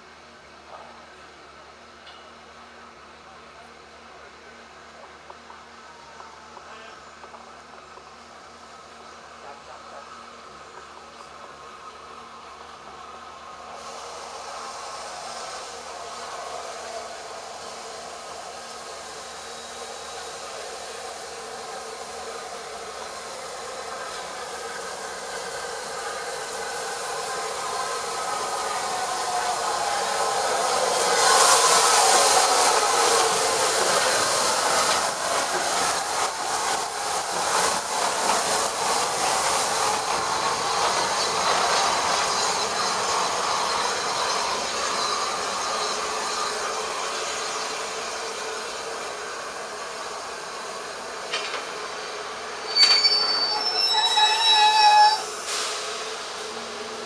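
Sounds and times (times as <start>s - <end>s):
steam locomotive passing: 0.0s - 57.0s
train rolling noise: 0.0s - 57.0s
rapid clicks of train wheels: 22.4s - 48.0s, 48.6s - 52.0s.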